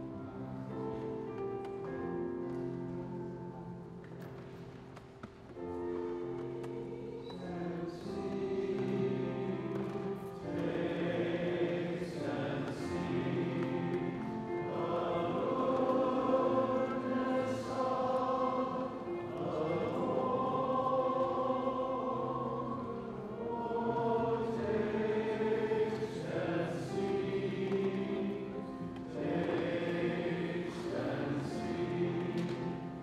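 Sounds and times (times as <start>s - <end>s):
choir singing a hymn: 5.8s - 33.0s.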